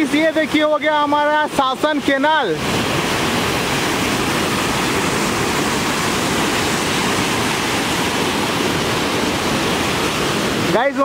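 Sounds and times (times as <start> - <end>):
water rushing through canal: 0.0 - 11.0.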